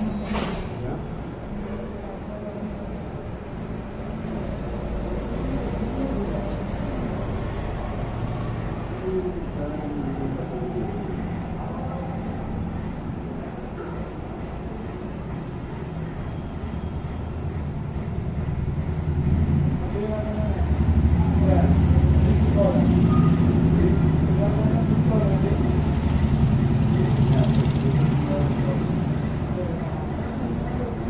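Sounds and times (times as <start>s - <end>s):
faint voices: 0.0s - 31.0s
vehicle engine rumbling: 0.0s - 31.0s.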